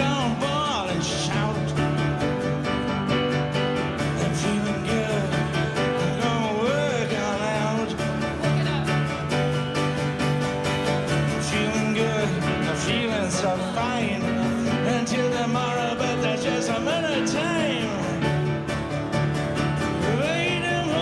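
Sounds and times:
man singing: 0.0s - 2.5s, 3.9s - 8.7s, 11.1s - 18.7s, 19.8s - 21.0s
piano: 0.0s - 21.0s
strummed acoustic guitars: 0.0s - 21.0s.

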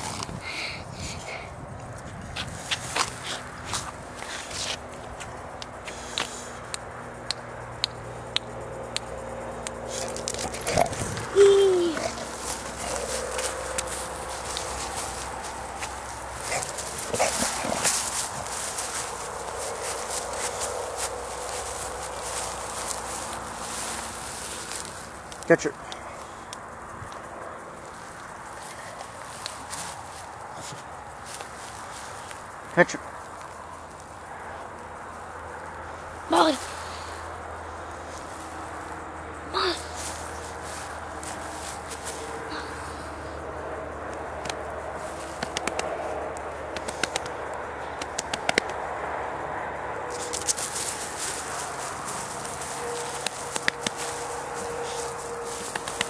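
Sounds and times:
dog breathing and snuffling: 2.4s - 4.9s, 9.8s - 24.8s, 50.1s - 56.0s
sharp clicks: 5.6s - 11.3s, 44.1s - 44.6s, 45.4s - 46.0s, 46.7s - 47.4s, 48.0s - 48.8s
outdoor hiss: 5.8s - 6.8s
dog claws clicking on concrete: 9.6s - 11.3s
rustling: 9.9s - 25.4s, 50.1s - 56.0s.

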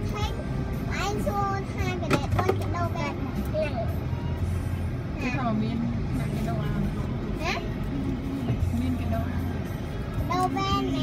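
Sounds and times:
music: 0.0s - 5.3s, 6.0s - 11.0s
car engine hum: 0.0s - 11.0s
street traffic: 0.0s - 11.0s.

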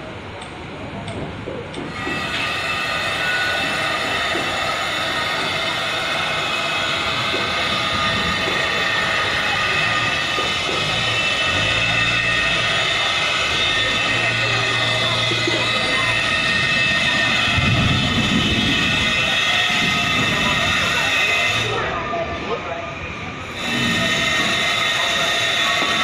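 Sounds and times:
high whining mechanical noise: 0.0s - 26.0s.

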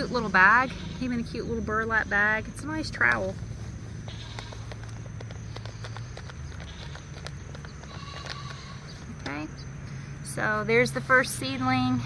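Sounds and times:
steady low hum: 0.0s - 12.0s
plastic pot clicking and crackling: 4.1s - 9.4s.

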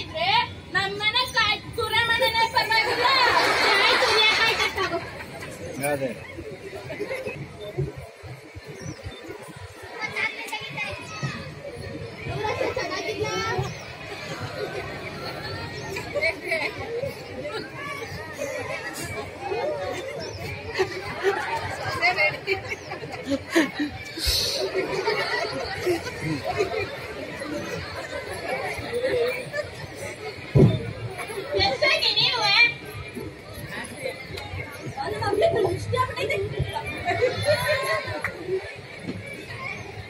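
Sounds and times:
women talking: 0.0s - 5.0s
background chatter: 0.0s - 40.0s.

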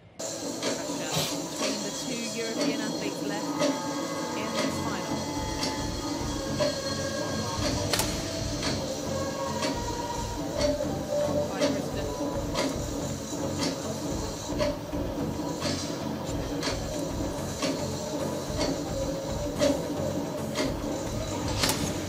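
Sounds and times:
indistinct voices: 0.0s - 22.0s.

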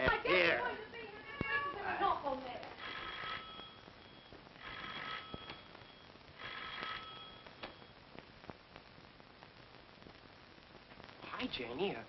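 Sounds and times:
electric doorbell ringing: 6.5s - 7.4s.

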